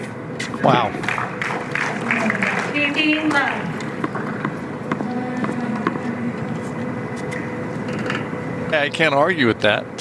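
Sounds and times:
background hum: 0:00.0 - 0:10.0.

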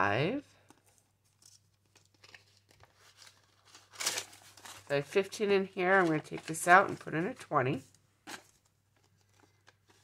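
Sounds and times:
banknotes rustling: 0:00.6 - 0:10.0.

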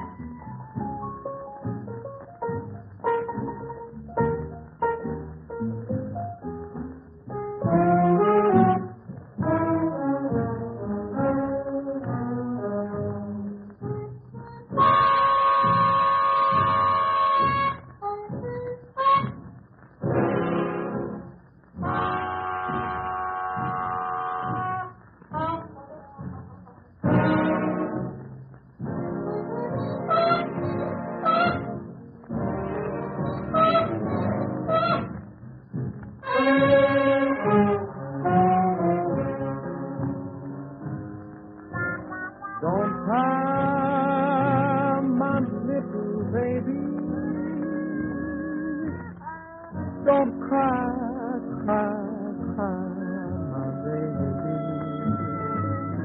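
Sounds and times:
swing big band music: 0:00.0 - 0:56.0
brass holding high note: 0:14.8 - 0:17.8, 0:21.8 - 0:25.6, 0:29.9 - 0:31.8, 0:32.7 - 0:35.1, 0:36.2 - 0:39.1.

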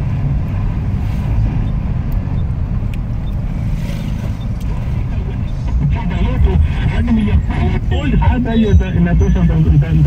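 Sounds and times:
car engine and tyre rumble: 0:00.0 - 0:10.0.

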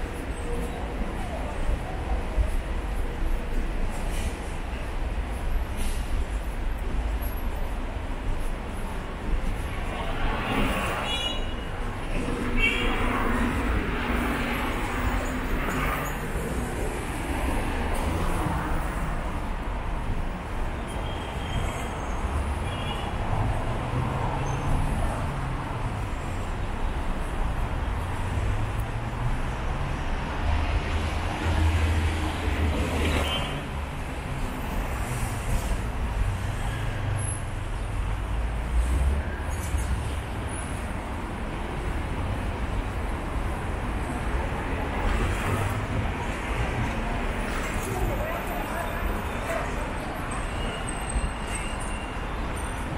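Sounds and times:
road traffic rumble: 0:00.0 - 0:52.9.

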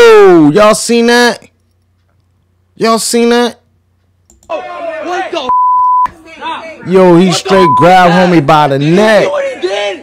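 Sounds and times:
high-pitched censor bleep: 0:05.5 - 0:06.1, 0:07.6 - 0:07.9.

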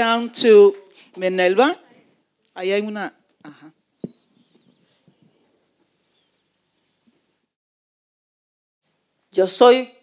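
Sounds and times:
faint room noise: 0:00.0 - 0:07.6.

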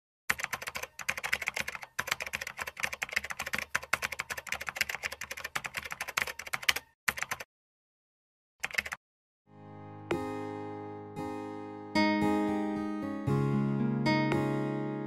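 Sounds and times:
fast keyboard typing: 0:00.3 - 0:07.5, 0:08.6 - 0:09.0.

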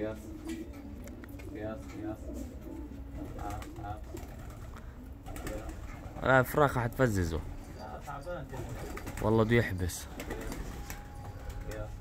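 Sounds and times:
pigeons cooing softly: 0:00.0 - 0:11.9.

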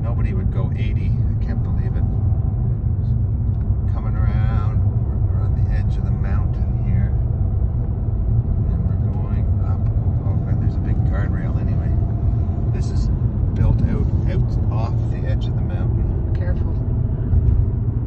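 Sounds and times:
car engine and tyre rumble: 0:00.0 - 0:18.0.

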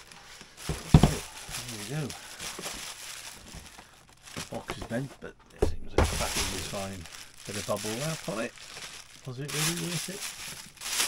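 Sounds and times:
bubble wrap and cardboard crinkling: 0:00.0 - 0:05.3, 0:06.0 - 0:11.0.

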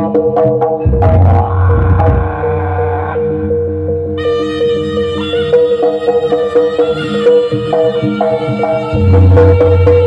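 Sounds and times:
big gong low hum: 0:00.8 - 0:04.2
tuned gong quick strokes: 0:00.8 - 0:04.2.

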